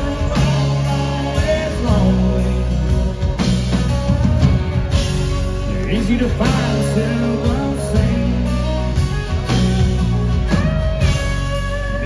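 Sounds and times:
live country band: 0.0 - 12.0.

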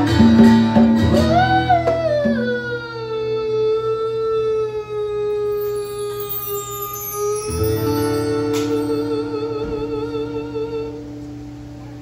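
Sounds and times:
man singing a long note: 1.3 - 11.2.

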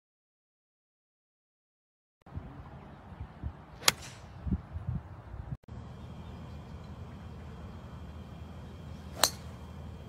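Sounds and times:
low background rumble: 2.3 - 10.0
golf club striking ball: 3.8 - 4.3, 9.1 - 9.6.

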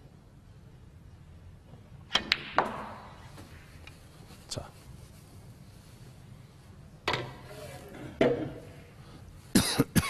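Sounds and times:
snooker balls clicking together: 2.1 - 3.2
cue striking snooker ball: 2.2 - 3.2.

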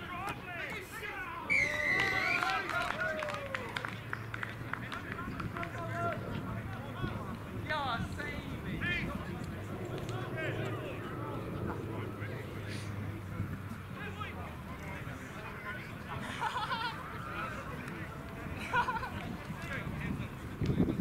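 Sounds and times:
players shouting: 0.0 - 13.3
whistle blast: 1.5 - 2.5.

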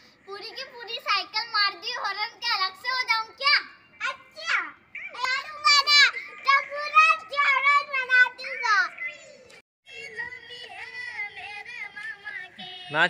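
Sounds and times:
young children talking: 0.3 - 9.6
children laughing: 5.0 - 9.5.

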